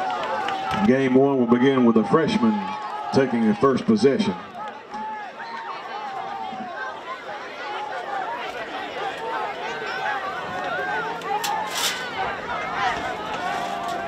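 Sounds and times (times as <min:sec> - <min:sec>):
crowd chatter: 0:00.0 - 0:14.0.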